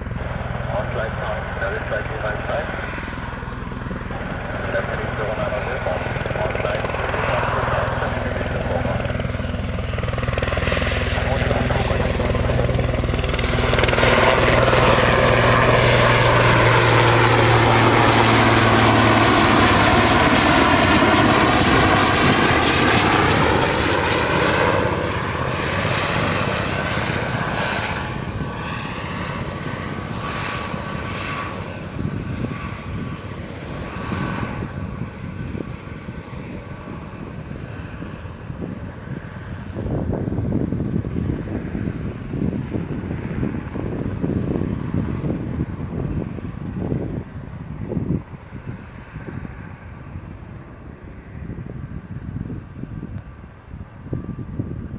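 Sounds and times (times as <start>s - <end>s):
helicopter flying past: 0.0s - 54.9s.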